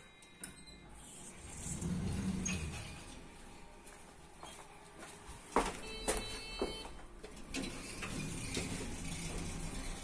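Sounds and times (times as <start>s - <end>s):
lift doors sliding shut: 1.3s - 3.4s, 7.4s - 10.0s.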